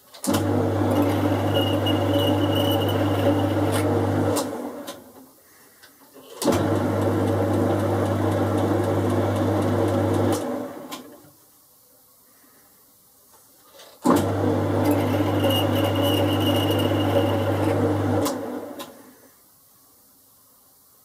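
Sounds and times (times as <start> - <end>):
lathe motor and gears running: 0.3 - 4.7, 14.1 - 18.8.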